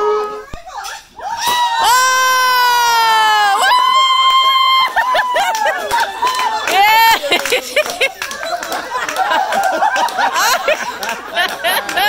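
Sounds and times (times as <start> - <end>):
high-pitched cheering cries: 0.0 - 7.7.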